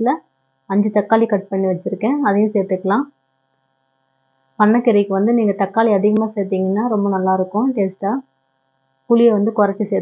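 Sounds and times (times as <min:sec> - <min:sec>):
person talking: 0:00.0 - 0:03.1, 0:04.6 - 0:08.2, 0:09.1 - 0:10.0
steady electrical hum: 0:00.0 - 0:10.0.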